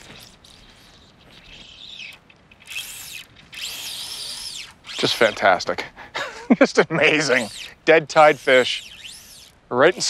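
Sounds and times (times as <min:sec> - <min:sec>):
fly reel drag whining: 0:00.0 - 0:05.6, 0:07.0 - 0:10.0.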